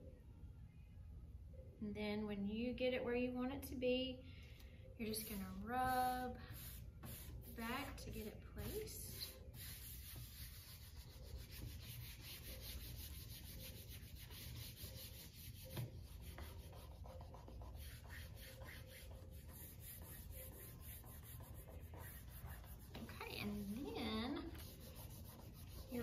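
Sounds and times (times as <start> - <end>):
hand rubbing stencil on board: 6.5 - 26.0.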